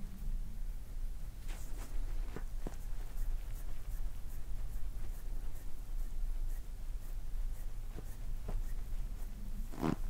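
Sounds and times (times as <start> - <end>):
steady low hum: 0.0 - 10.0
hands rubbing skin: 1.5 - 10.0.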